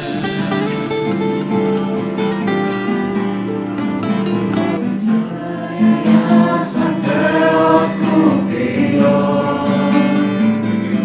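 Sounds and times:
young voices singing worship song: 0:00.0 - 0:11.0.

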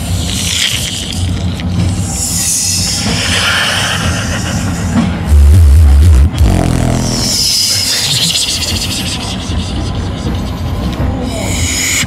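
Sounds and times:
beatbox deep bass note: 0:01.8 - 0:12.0
beatbox high hissing sweep: 0:01.9 - 0:12.0.

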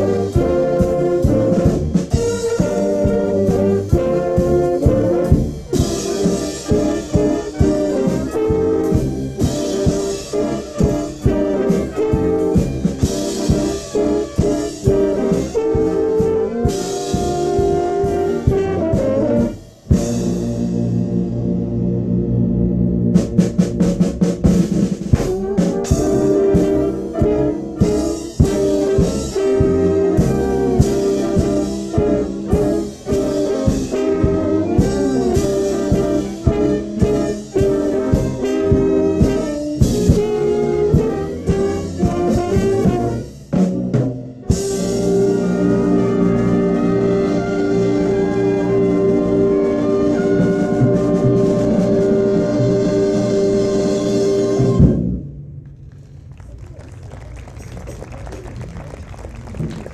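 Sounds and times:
concert band playing jazzy passage: 0:00.0 - 0:59.9.

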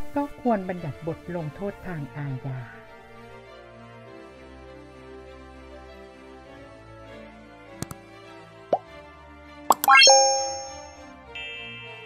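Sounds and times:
soft background music: 0:00.0 - 0:12.0
clicks: 0:09.7 - 0:10.9
rising chime notes: 0:09.7 - 0:11.0.

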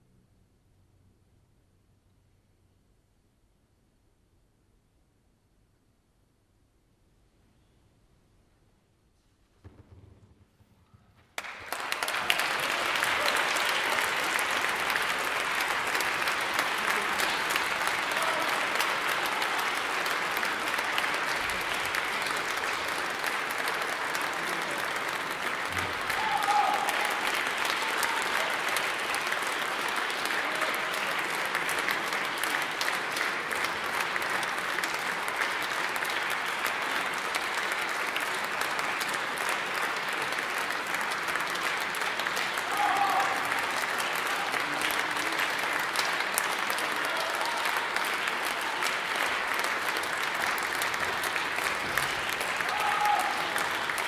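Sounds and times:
audience applauding: 0:11.4 - 0:54.0.

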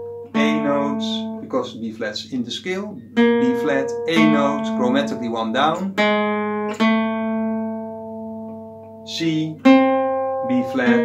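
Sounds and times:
acoustic guitar note ringing: 0:00.0 - 0:11.0.

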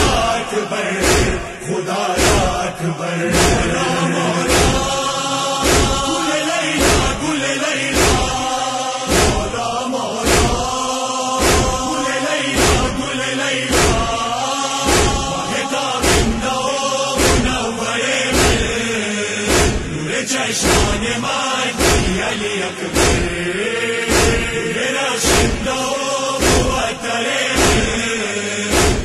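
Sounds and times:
men chanting in unison: 0:00.0 - 0:29.0
chest-beating strikes: 0:02.2 - 0:06.2, 0:06.8 - 0:07.2, 0:07.9 - 0:08.4, 0:09.1 - 0:09.6, 0:11.4 - 0:11.9, 0:14.9 - 0:16.5, 0:17.2 - 0:17.6, 0:18.3 - 0:18.8, 0:19.5 - 0:20.0, 0:21.8 - 0:22.3, 0:22.9 - 0:23.4, 0:24.1 - 0:24.5, 0:26.4 - 0:26.9, 0:27.6 - 0:28.0, 0:28.7 - 0:29.0.

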